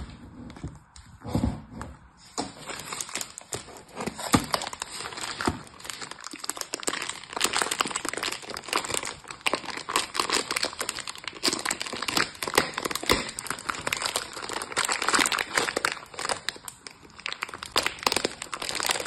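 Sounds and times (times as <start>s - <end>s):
plastic wrapping crinkling: 2.3s - 19.0s.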